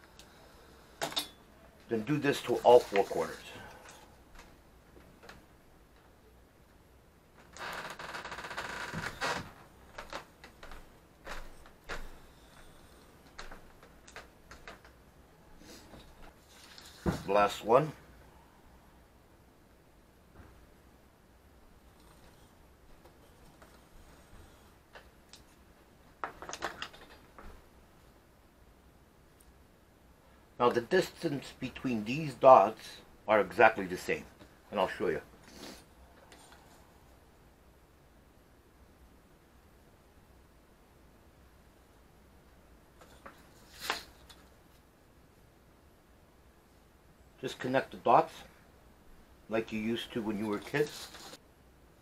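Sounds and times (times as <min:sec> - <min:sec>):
compass pencil scraping paper: 0:50.5 - 0:51.4.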